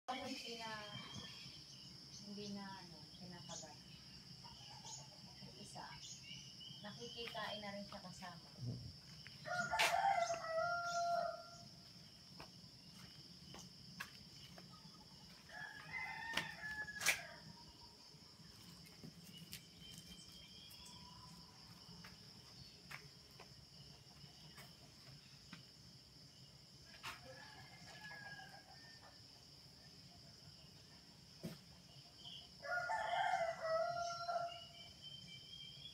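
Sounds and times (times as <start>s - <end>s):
rooster crowing: 9.4s - 11.7s, 15.3s - 17.7s, 27.0s - 29.1s, 32.6s - 34.8s.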